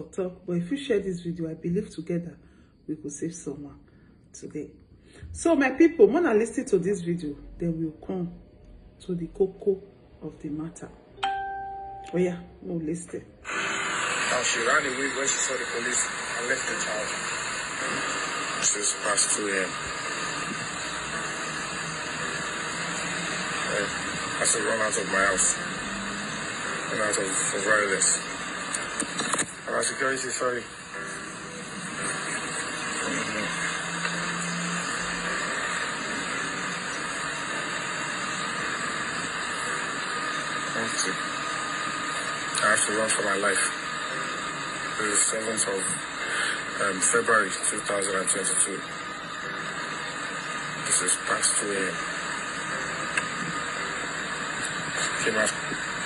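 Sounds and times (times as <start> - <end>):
steady hiss from phone speaker: 13.4 - 56.0.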